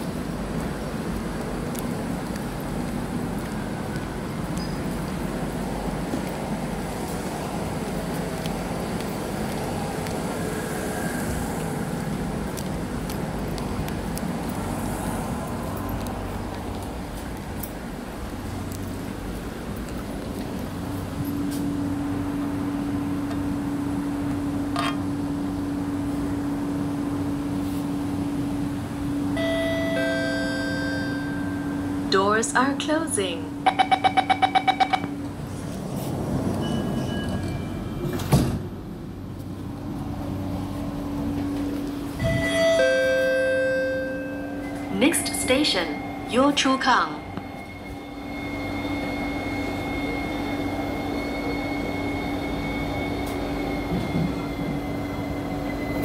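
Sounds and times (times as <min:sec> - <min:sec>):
metro car interior noise: 0:00.0 - 0:56.0
steady hum: 0:38.8 - 0:56.0.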